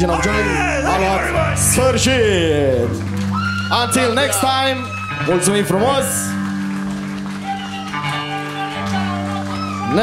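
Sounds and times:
man crying out through pa: 0.0 - 1.6.

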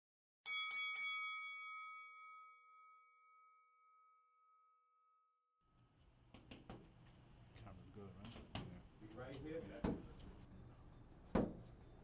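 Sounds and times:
boxing ring bell ringing: 0.4 - 5.8, 9.5 - 12.0
faint room noise: 5.8 - 12.0.

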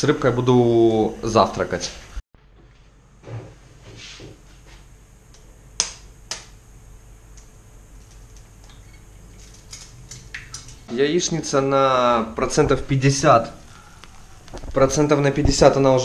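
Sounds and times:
faint steady hiss: 4.2 - 16.0.

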